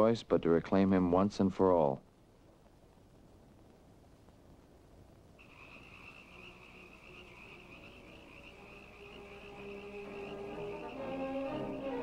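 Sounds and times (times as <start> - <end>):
faint orchestral music: 5.4 - 12.0
frogs chorus: 5.4 - 12.0.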